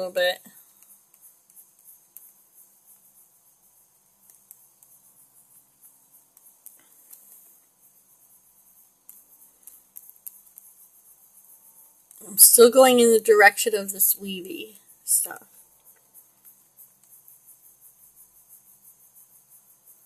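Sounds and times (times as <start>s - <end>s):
steady high hiss: 0.0s - 20.0s
stylus tapping on graphics tablet: 0.6s - 13.2s, 15.2s - 20.0s.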